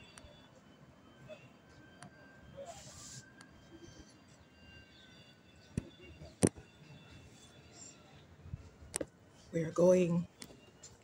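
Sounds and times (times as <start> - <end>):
faint outdoor background: 0.0 - 11.0.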